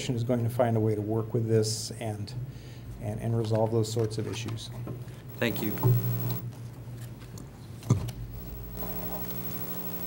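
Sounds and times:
electrical hum: 5.2s - 6.5s, 8.1s - 10.0s.

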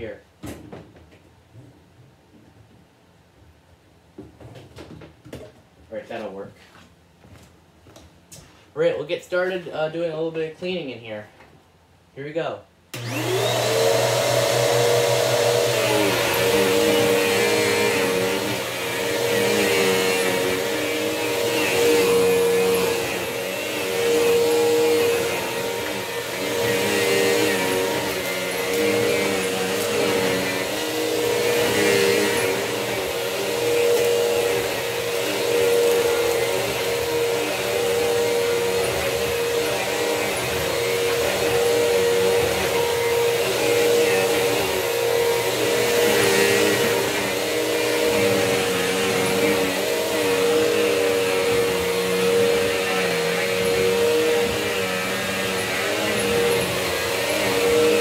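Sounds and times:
vacuum cleaner motor whine: 12.9s - 58.0s.

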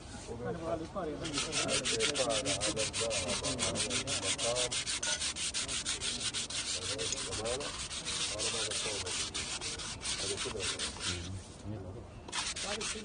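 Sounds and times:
cloth rubbing on metal: 1.2s - 11.6s, 12.3s - 13.0s.

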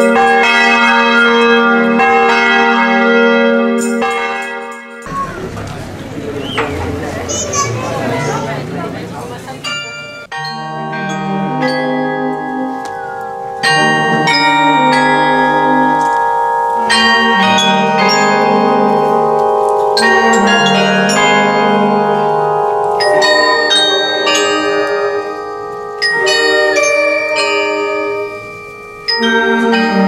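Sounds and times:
carillon bells playing a tune: 0.0s - 30.0s
wind band holding low notes: 5.1s - 30.0s.

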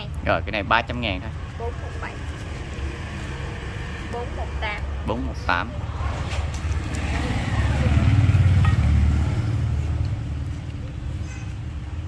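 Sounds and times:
motor vehicle passing: 0.8s - 12.0s.

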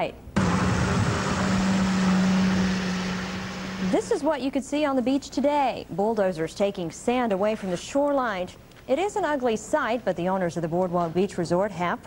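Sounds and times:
diesel engine droning: 0.4s - 4.2s.

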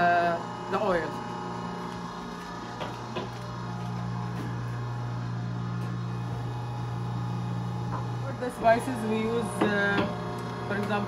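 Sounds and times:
low electrical hum of kitchen equipment: 0.0s - 11.0s.

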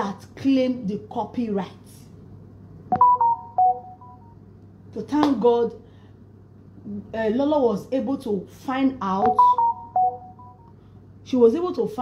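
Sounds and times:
short electronic phone beeps: 2.9s - 4.4s, 9.2s - 10.7s.

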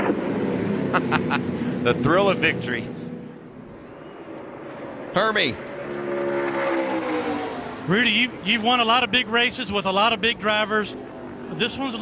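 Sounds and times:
race truck engine droning: 0.0s - 12.0s.

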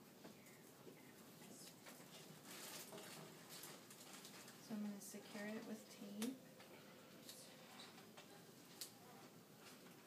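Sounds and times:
faint rustles of hands: 0.3s - 5.6s.

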